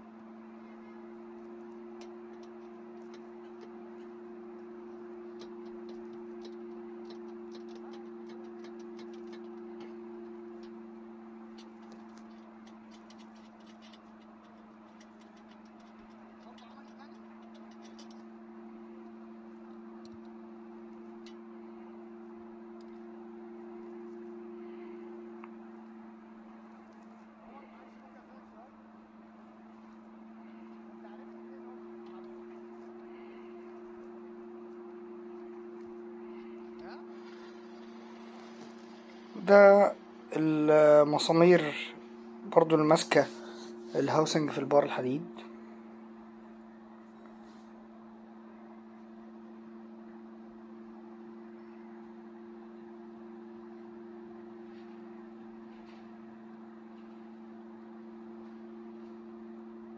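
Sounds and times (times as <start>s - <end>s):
low two-note hum: 0.0s - 59.2s.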